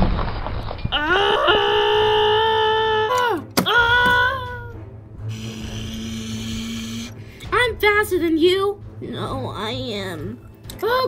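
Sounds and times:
high-pitched whining wail: 5.3 - 7.2.

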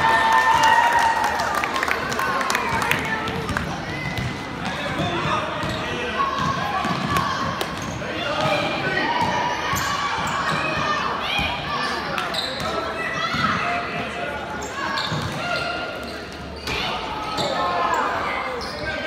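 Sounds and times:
spectators talking and calling out: 0.0 - 19.0
sneakers squeaking: 3.3 - 13.8, 14.4 - 19.0.

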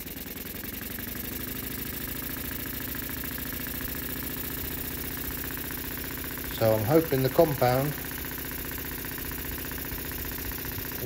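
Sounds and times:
model steam engine running fast: 0.0 - 11.0.

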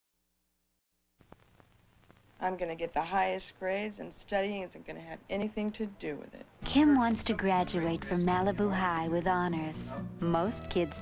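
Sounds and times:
faint soundtrack hiss: 1.2 - 11.0.

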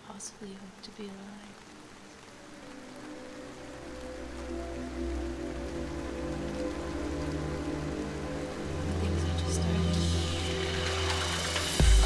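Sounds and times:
steady rain falling: 0.0 - 12.0
music with long held notes: 1.4 - 12.0.

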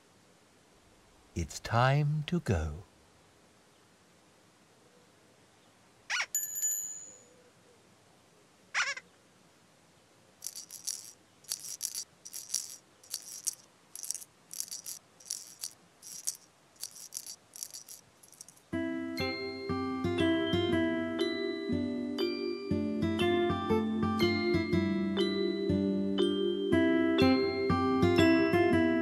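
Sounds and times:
cartoon swooping squeaks: 6.1 - 6.3, 8.8 - 9.0
bright bell-like ring: 6.4 - 7.3
rhythmic shaker rattle: 10.4 - 18.8.

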